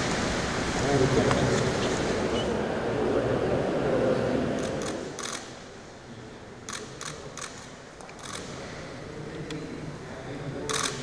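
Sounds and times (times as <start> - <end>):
camera shutters clicking: 4.6 - 5.5, 6.7 - 8.5, 10.7 - 11.0.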